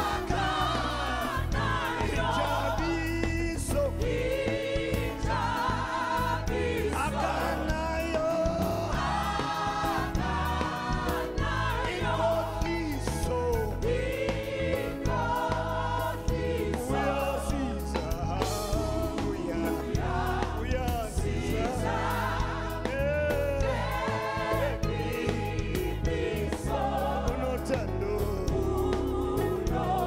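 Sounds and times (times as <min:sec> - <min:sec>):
bass guitar: 0:00.0 - 0:30.0
choir singing: 0:00.0 - 0:30.0
drum kit: 0:00.0 - 0:30.0
keyboard: 0:00.0 - 0:30.0
lead singer: 0:00.0 - 0:30.0.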